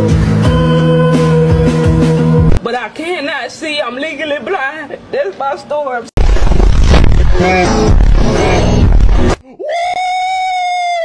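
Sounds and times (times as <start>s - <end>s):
loud noisy sound: 6.2s - 9.4s
man screaming high-pitched: 9.4s - 11.0s.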